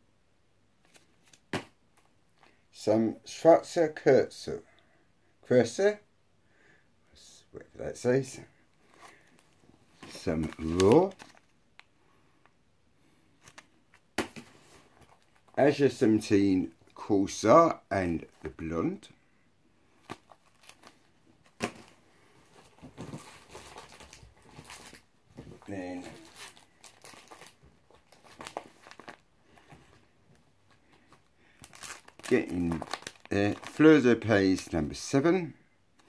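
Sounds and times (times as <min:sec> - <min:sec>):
wrapping crinkling and rustling: 0:08.8 - 0:11.9, 0:19.9 - 0:35.2.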